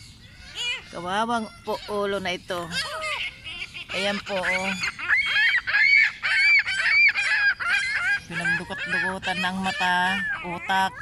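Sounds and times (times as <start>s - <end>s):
birds calling loudly: 0.0s - 11.0s.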